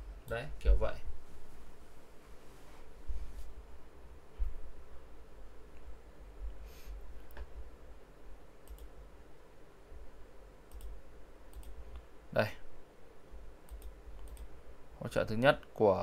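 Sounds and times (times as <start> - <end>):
low steady hum: 0.0 - 16.0
computer mouse clicks: 8.6 - 8.9, 10.7 - 12.1, 13.7 - 14.5.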